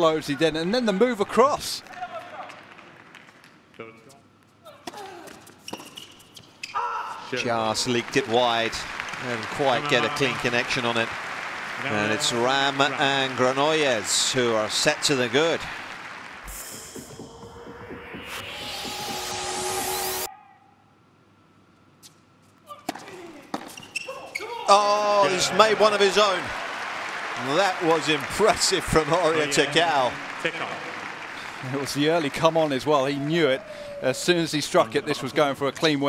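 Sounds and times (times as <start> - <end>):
crowd noise: 7.2 - 20.3, 24.7 - 36.0
rising electronic whoosh: 16.4 - 20.3.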